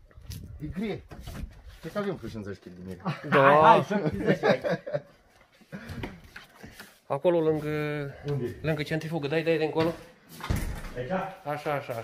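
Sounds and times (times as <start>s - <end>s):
faint shuffling: 0.2s - 2.8s.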